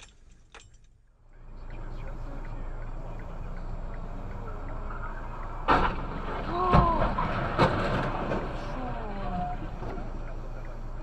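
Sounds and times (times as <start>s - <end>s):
clatter: 5.6s - 8.8s
truck crash bangs: 5.6s - 10.1s.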